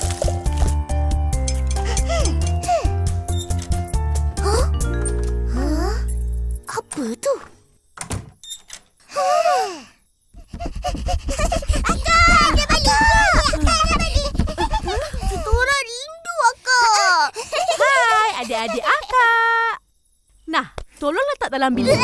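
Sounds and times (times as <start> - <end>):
cartoon children's voices calling: 11.8 - 14.5.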